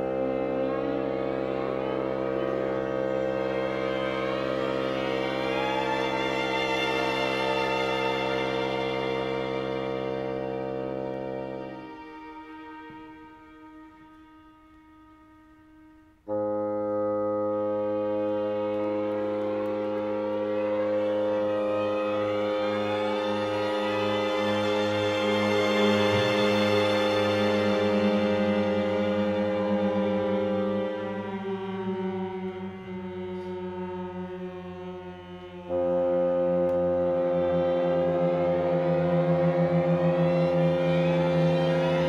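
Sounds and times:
orchestra sliding glissando chord: 0.0 - 42.0.

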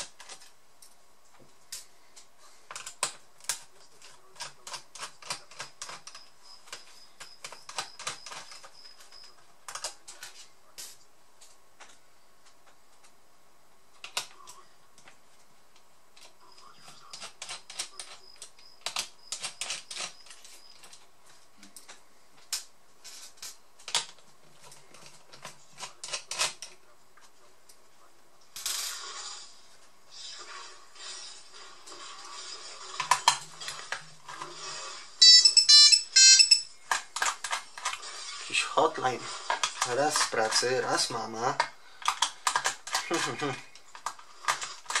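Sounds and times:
mobile phone ringtone: 35.2 - 36.7.

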